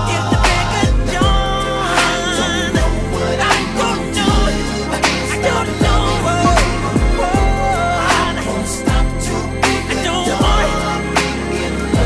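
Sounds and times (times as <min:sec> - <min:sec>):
r and b song with deep bass: 0:00.0 - 0:12.0.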